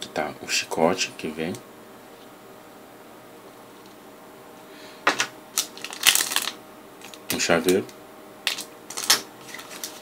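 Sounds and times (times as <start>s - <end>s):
plastic packaging crinkling: 5.5s - 10.0s.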